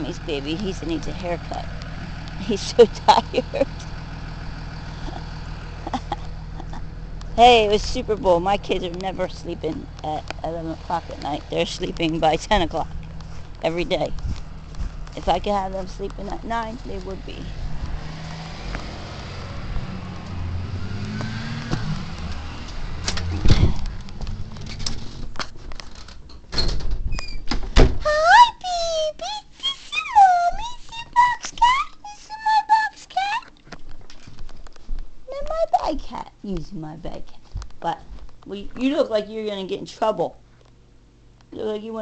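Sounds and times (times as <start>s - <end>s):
vehicle engine idling: 0.0s - 25.7s.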